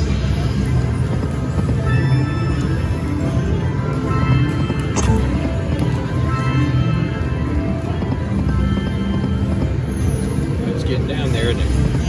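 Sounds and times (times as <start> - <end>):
slot machine music and effects: 0.0 - 12.0.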